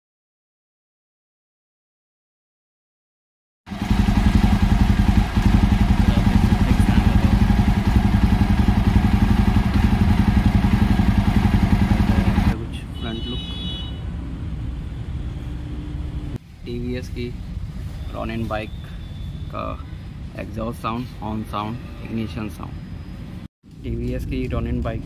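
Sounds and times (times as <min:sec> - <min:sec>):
motorcycle engine running: 0:03.7 - 0:12.6.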